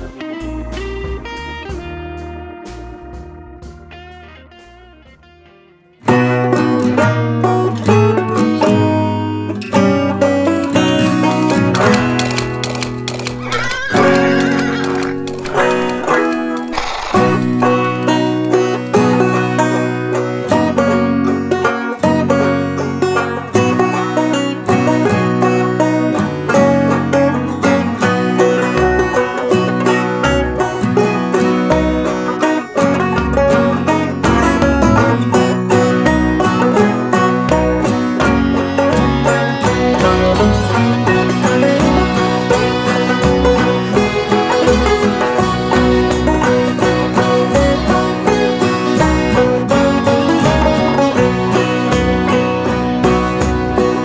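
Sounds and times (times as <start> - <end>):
fingerpicked acoustic guitar: 3.6 - 54.0.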